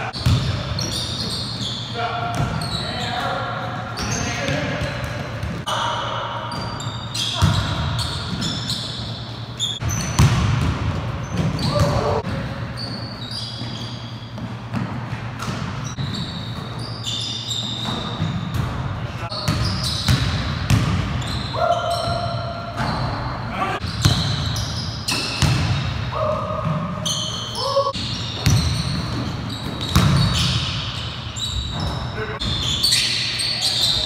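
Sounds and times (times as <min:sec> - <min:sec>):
sneakers squeaking: 0:00.0 - 0:34.0.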